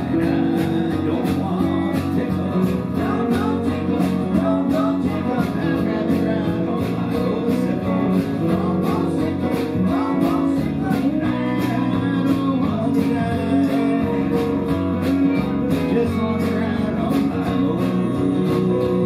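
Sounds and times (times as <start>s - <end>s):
electric guitar: 0.0s - 19.0s
strummed acoustic guitar: 0.0s - 19.0s.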